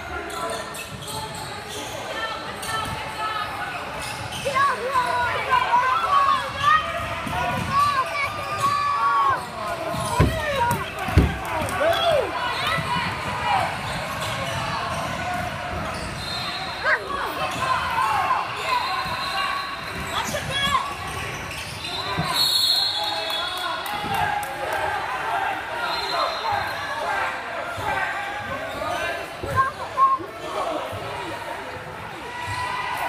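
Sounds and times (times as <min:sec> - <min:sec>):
sneakers squeaking on court: 0:00.2 - 0:03.1, 0:12.5 - 0:17.9, 0:18.6 - 0:22.5
referee's whistle: 0:15.9 - 0:17.1, 0:18.6 - 0:20.4, 0:21.6 - 0:23.6, 0:25.8 - 0:26.8.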